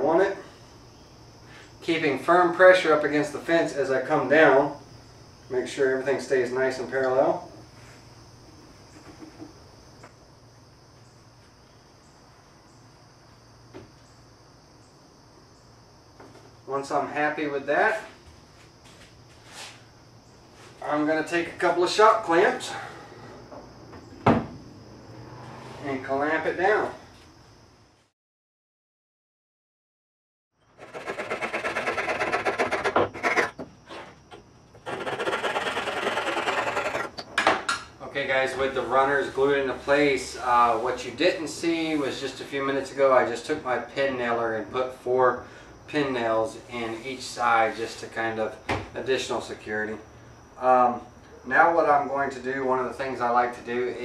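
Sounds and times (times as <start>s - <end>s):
crickets chirping: 0.0s - 28.1s, 30.6s - 54.0s
brush scrubbing on board: 30.8s - 33.6s, 34.8s - 37.1s.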